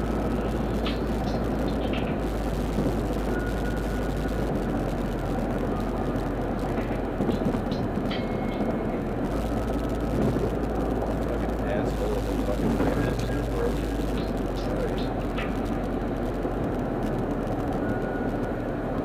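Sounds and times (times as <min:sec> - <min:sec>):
car interior road noise: 0:00.0 - 0:19.0.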